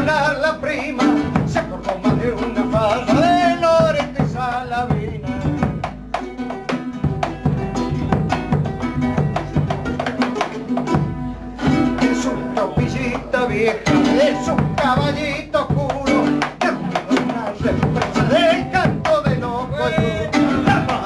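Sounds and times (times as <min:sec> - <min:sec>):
person singing: 0:00.0 - 0:10.1, 0:10.9 - 0:21.0
nylon-string guitar strummed: 0:00.0 - 0:21.0.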